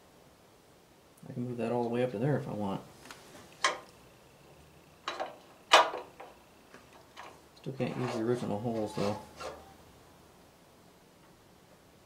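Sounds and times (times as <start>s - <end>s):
faint background noise: 0.0s - 12.0s
person speaking: 7.6s - 9.4s.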